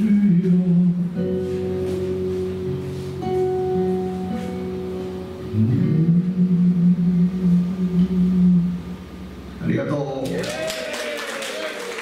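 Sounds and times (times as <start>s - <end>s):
acoustic guitar: 0.0s - 10.0s
man singing long note: 5.5s - 9.0s.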